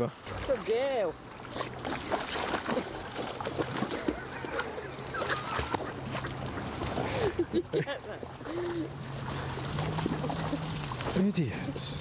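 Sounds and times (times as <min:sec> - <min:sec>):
dogs splashing in water: 0:00.0 - 0:07.5, 0:08.1 - 0:12.0.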